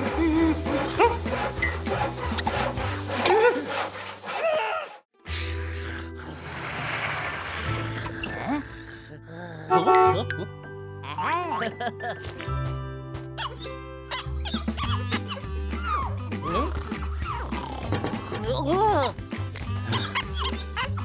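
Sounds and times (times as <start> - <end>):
cartoon soundtrack music: 0.0 - 3.6, 7.6 - 21.0
wordless vocal noises: 7.8 - 10.2, 15.2 - 20.6.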